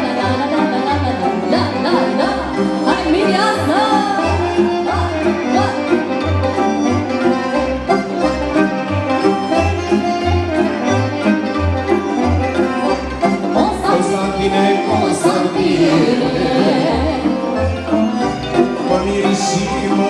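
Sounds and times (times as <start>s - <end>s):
live band playing folk dance music: 0.0s - 20.0s.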